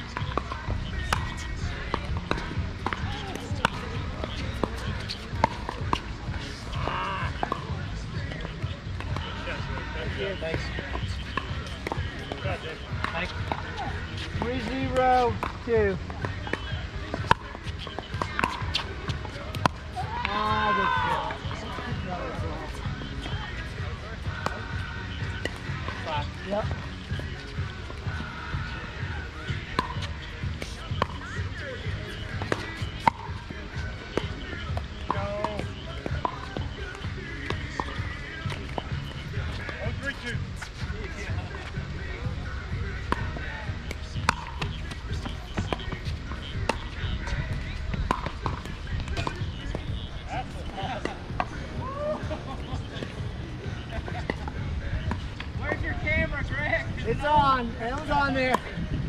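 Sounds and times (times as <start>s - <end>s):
distant voices: 0.0s - 59.0s.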